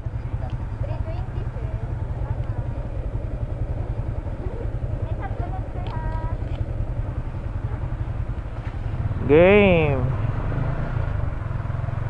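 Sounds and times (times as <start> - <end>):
motorcycle engine idling: 0.0 - 12.0
faint voices: 0.1 - 8.1.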